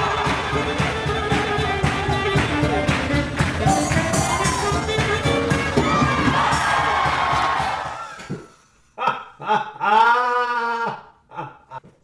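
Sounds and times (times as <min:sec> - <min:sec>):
swing music: 0:00.0 - 0:08.0
crowd cheering: 0:00.0 - 0:08.6.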